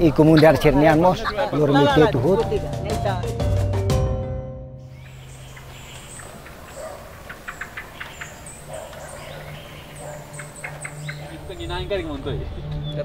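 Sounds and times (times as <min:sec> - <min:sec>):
birds chirping: 0:00.0 - 0:03.6, 0:04.8 - 0:13.0
music: 0:00.1 - 0:05.0, 0:09.4 - 0:13.0.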